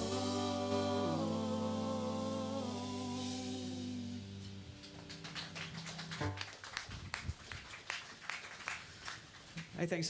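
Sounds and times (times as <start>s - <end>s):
held bass and keyboard notes: 0.0s - 6.4s
live rock band: 0.0s - 6.4s.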